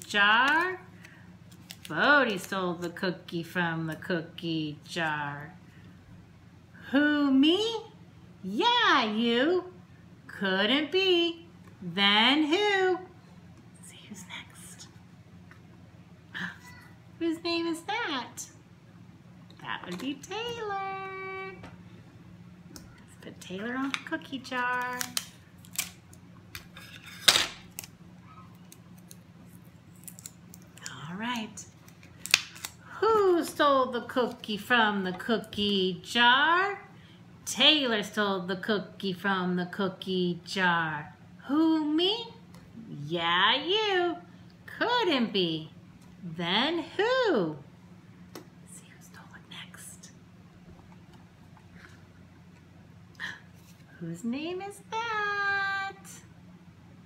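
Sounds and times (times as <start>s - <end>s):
woman whispering: 13.8s - 14.9s, 48.7s - 50.1s.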